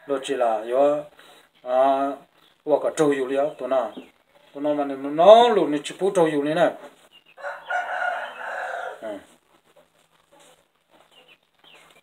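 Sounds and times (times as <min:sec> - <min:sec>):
rooster crowing: 0:07.4 - 0:09.2.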